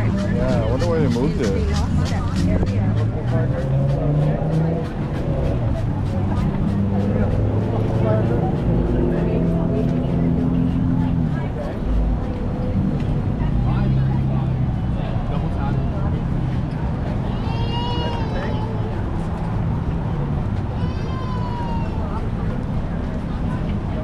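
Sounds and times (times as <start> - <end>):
crowd chatter: 0.0 - 24.0
traffic engines humming: 0.0 - 24.0.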